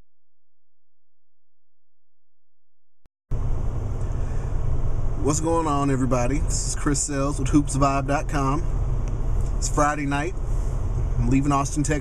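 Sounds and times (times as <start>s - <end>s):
road and engine noise in car cabin: 3.3s - 12.0s.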